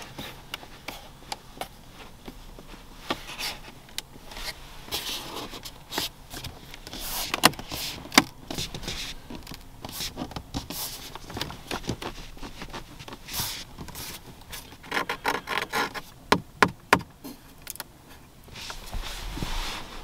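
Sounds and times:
hand rubbing dashboard trim: 0.0s - 17.1s, 18.0s - 20.0s.

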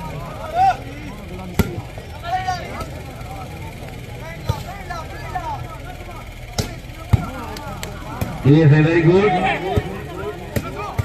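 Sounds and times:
crowd voices: 0.0s - 11.0s
steady low hum: 0.0s - 11.0s
hand slapping volleyball: 6.6s - 8.4s, 10.5s - 11.0s.

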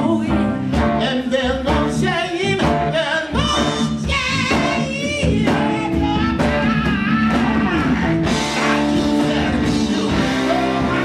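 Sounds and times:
bass guitar: 0.0s - 11.0s
guitar: 0.0s - 11.0s
person singing: 0.0s - 11.0s
steady drum beat: 0.7s - 11.0s.

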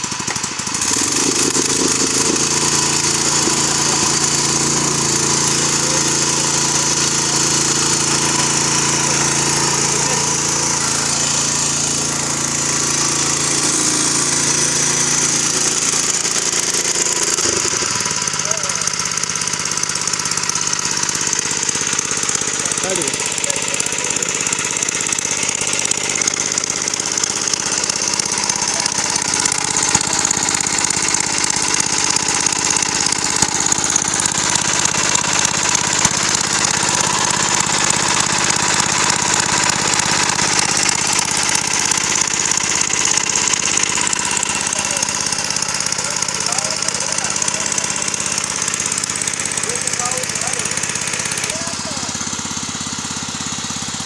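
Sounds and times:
small stationary engine running: 0.0s - 54.0s.

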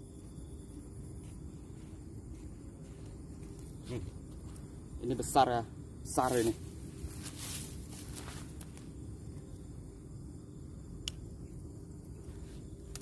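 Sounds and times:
outdoor background noise: 0.0s - 13.0s
soft rustles: 6.3s - 8.9s.

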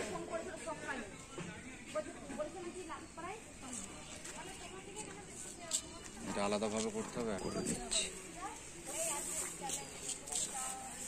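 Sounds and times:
faint voices talking: 0.0s - 11.0s.

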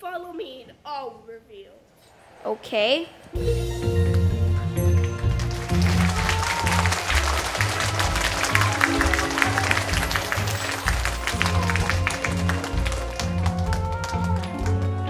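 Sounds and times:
audience applauding: 2.9s - 15.0s
backing music with bass line: 3.4s - 15.0s.

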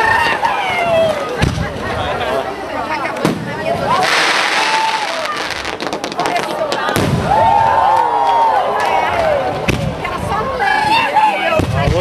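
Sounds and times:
fireworks bangs and crackling: 0.0s - 2.2s, 3.0s - 8.0s, 8.8s - 12.0s.

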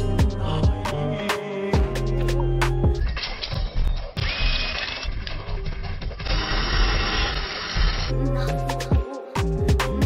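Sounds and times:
power drill boring into wall: 6.2s - 8.1s.

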